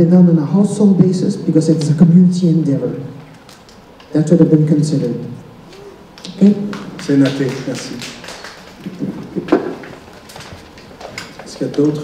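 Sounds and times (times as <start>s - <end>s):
low room noise: 0.0s - 12.0s
soft knocks: 8.8s - 11.6s.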